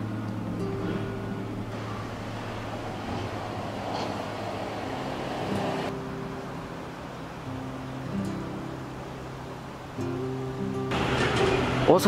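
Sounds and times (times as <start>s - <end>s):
car passing: 0.0s - 9.7s.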